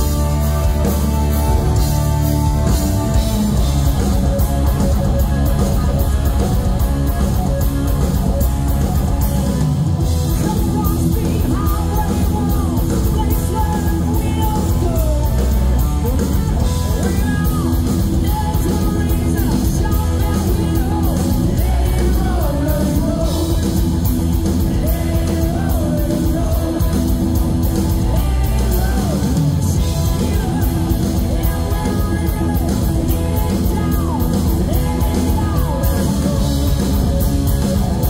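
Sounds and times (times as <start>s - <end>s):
drums: 0.0s - 38.0s
electric guitar: 0.0s - 38.0s
hard rock band playing: 0.0s - 38.0s
person singing: 10.2s - 23.7s, 24.6s - 37.3s.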